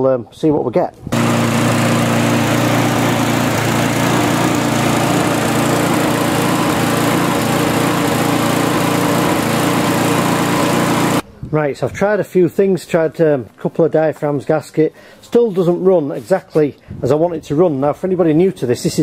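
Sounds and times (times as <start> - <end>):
lawnmower engine running: 1.1 - 11.2.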